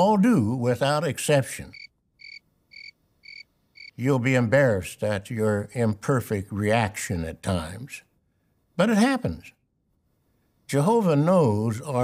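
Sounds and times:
crickets chirping: 0:01.7 - 0:04.0.

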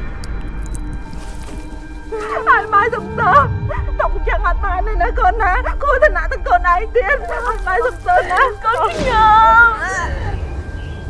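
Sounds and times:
eerie music drone: 0:00.0 - 0:11.0.

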